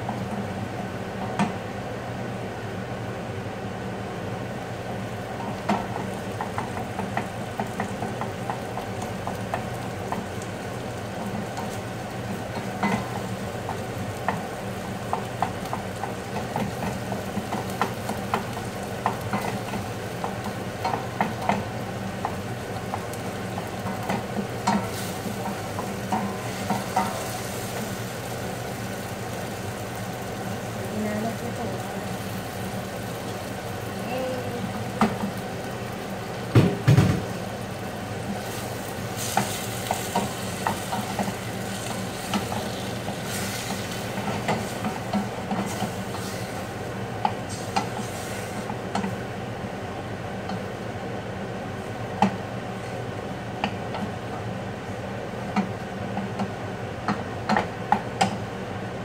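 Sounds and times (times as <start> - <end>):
meat sizzling in a pot: 0.0 - 58.8.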